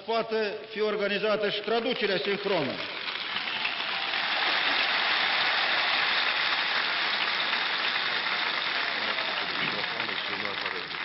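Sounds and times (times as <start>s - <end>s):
large crowd applauding: 1.6s - 11.0s.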